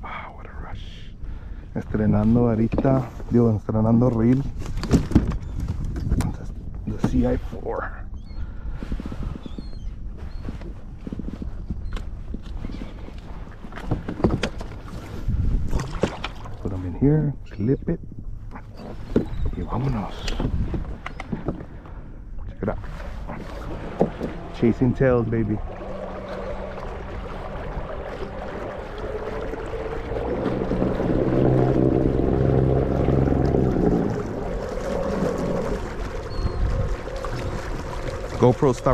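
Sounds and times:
wind: 0:00.0 - 0:38.9
water noise at kayak hull: 0:01.2 - 0:17.3, 0:18.3 - 0:38.9
steady low hum: 0:10.8 - 0:38.9
low rumble: 0:15.0 - 0:38.9.

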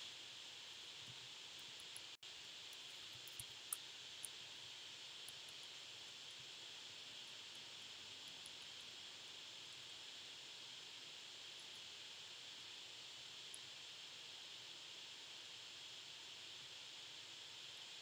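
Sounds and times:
steady noise floor hiss: 0:00.0 - 0:18.0
faint tiny ticks: 0:01.0 - 0:10.1, 0:11.4 - 0:13.8.

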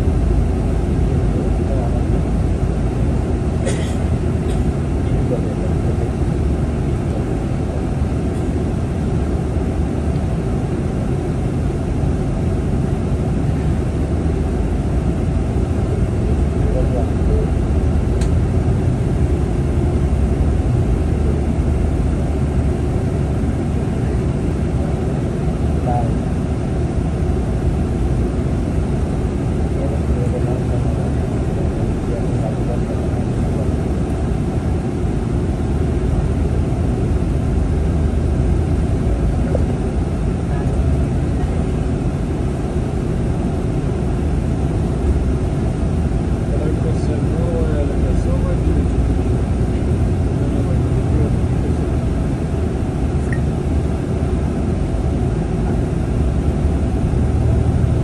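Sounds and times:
bus engine drone: 0:00.0 - 0:58.0
road noise: 0:00.0 - 0:58.0.

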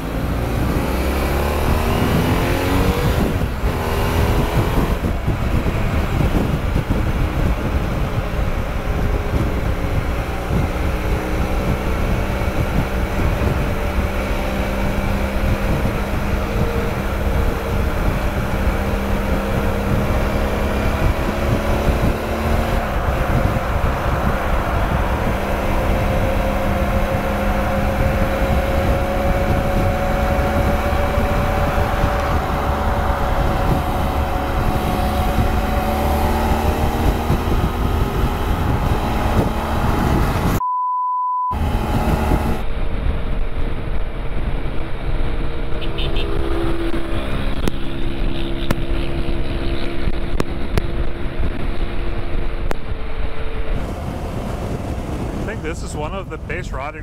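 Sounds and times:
motorcycle engine cruising: 0:00.0 - 0:40.6, 0:41.5 - 0:57.0
wind rumble on microphone: 0:00.0 - 0:40.6, 0:41.5 - 0:57.0.

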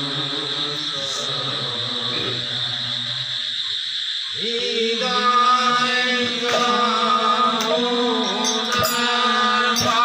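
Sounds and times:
devotees chanting: 0:00.0 - 0:10.0
steady high-pitched tone: 0:00.0 - 0:10.0.

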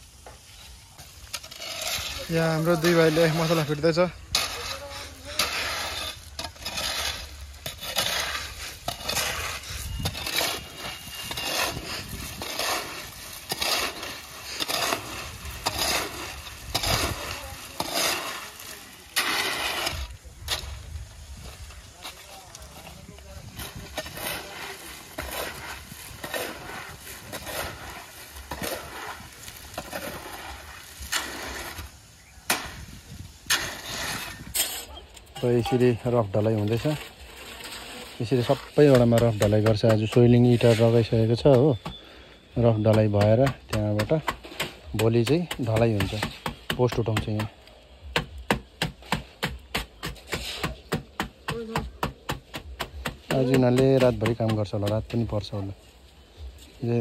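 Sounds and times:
hoe scraping through gravel: 0:00.0 - 0:51.4
float tapping on wet concrete: 0:38.8 - 0:40.4, 0:42.7 - 0:55.3.

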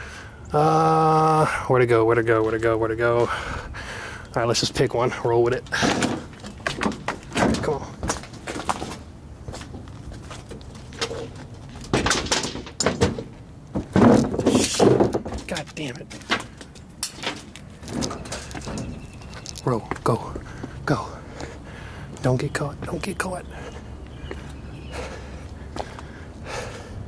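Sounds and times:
heavy breathing: 0:00.0 - 0:00.5, 0:03.2 - 0:04.4, 0:20.3 - 0:22.2, 0:23.4 - 0:27.0
footsteps scrambling over plastic seats: 0:05.4 - 0:26.8.

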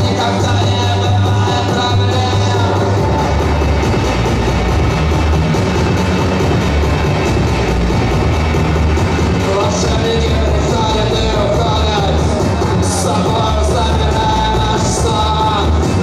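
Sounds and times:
electronic dance music with heavy bass: 0:00.0 - 0:16.0.

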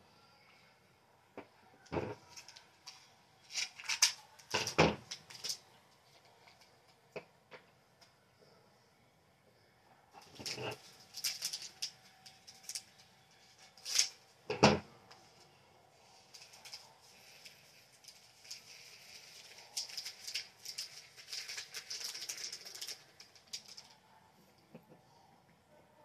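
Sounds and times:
plastic beads rattling into bottle: 0:10.2 - 0:13.0, 0:16.4 - 0:23.9.

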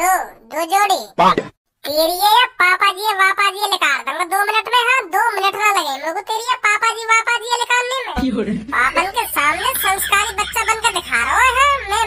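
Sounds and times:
high-pitched cartoon voice talking: 0:00.0 - 0:12.0.

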